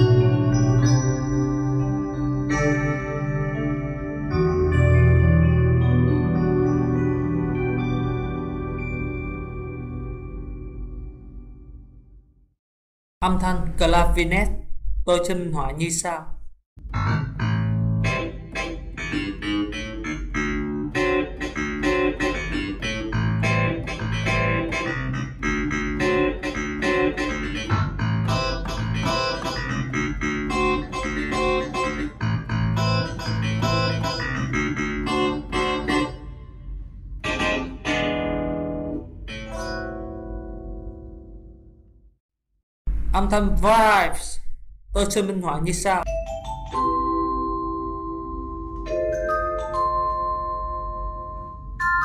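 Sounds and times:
ringing keyboard chords: 0:00.0 - 0:11.7, 0:16.9 - 0:41.8, 0:46.0 - 0:52.0
pulsing bass line: 0:16.8 - 0:18.5, 0:22.6 - 0:36.4
clavinet plucky notes: 0:16.9 - 0:36.3.

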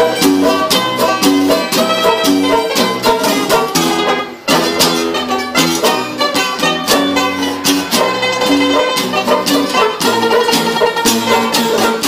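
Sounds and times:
lively plucked string music: 0:00.0 - 0:12.0.

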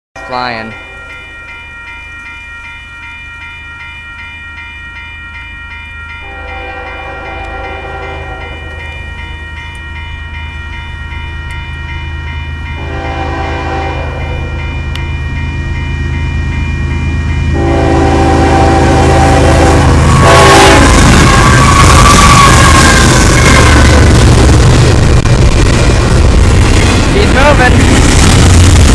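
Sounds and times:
train passing on rails: 0:00.2 - 0:28.9
train air horn blasts: 0:06.3 - 0:08.7, 0:12.8 - 0:14.6, 0:17.5 - 0:24.1.

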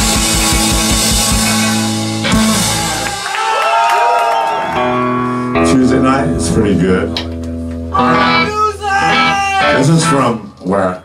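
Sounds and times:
electric guitar ringing chord: 0:04.8 - 0:10.4
man speaking into a microphone: 0:05.6 - 0:07.2, 0:08.0 - 0:11.0.

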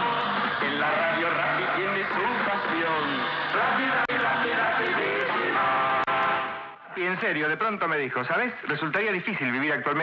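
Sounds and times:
voices on radio broadcast: 0:00.0 - 0:06.2.

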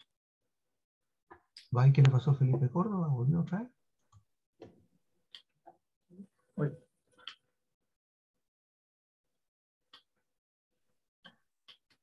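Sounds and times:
man talking: 0:01.7 - 0:03.7
keyboard and mouse clicks: 0:04.1 - 0:05.8, 0:09.9 - 0:10.2, 0:11.2 - 0:12.0.

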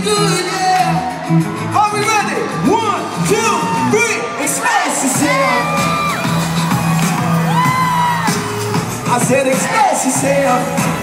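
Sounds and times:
live pop music over pa: 0:00.0 - 0:11.0
crowd whooping and cheering: 0:00.2 - 0:11.0.

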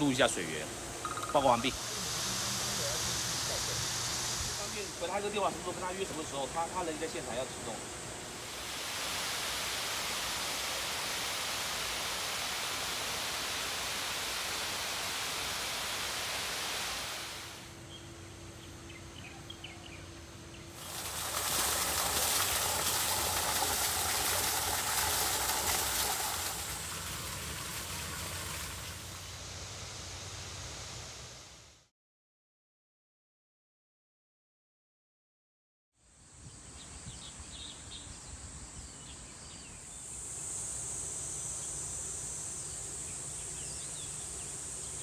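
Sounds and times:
water rushing down a spillway: 0:08.4 - 0:17.6, 0:20.8 - 0:29.4.

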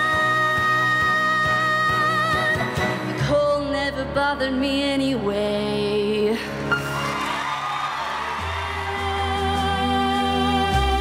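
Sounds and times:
backing music: 0:06.6 - 0:11.0.

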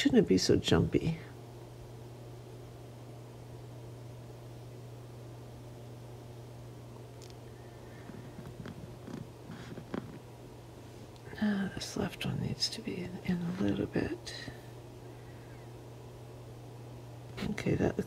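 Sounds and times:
steady low hum: 0:00.0 - 0:18.0
faint soft noises: 0:07.1 - 0:15.8.

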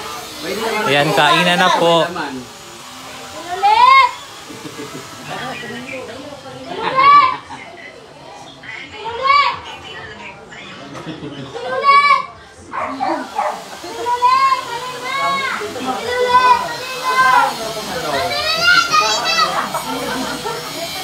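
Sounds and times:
background chatter: 0:00.0 - 0:21.0
children shouting and squealing: 0:03.3 - 0:04.5, 0:06.6 - 0:10.1, 0:10.9 - 0:21.0.

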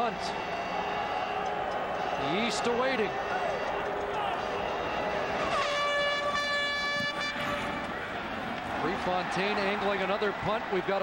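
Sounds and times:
stadium crowd noise: 0:00.0 - 0:11.0
horn note blown: 0:05.4 - 0:08.0.

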